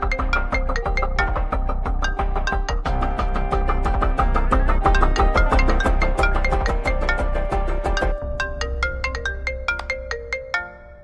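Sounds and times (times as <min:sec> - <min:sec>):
phone ringtone marimba notes: 0:00.0 - 0:11.0.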